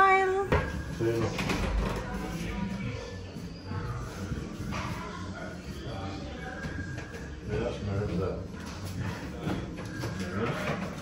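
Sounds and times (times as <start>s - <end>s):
low indistinct voices: 0.0s - 11.0s.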